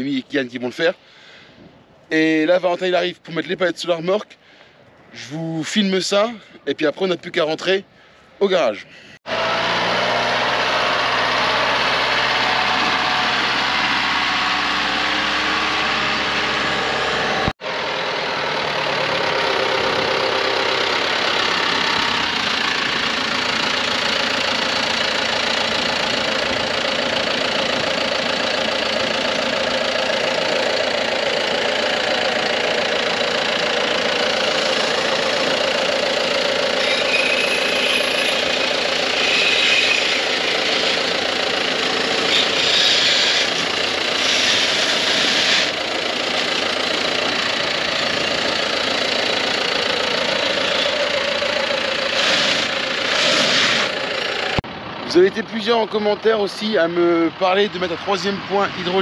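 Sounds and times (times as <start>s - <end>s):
tractor diesel engine running: 7.7s - 59.0s.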